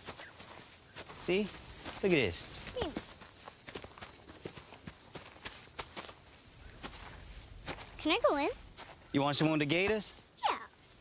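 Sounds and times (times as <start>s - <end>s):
footsteps through tall grass: 0.0s - 11.0s.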